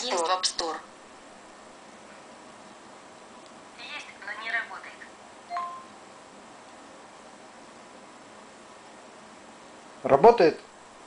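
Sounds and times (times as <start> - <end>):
two-note activation chime: 5.5 - 5.9.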